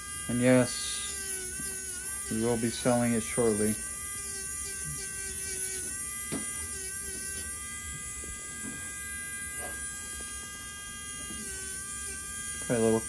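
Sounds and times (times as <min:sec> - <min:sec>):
nail drill whining: 0:00.0 - 0:13.0.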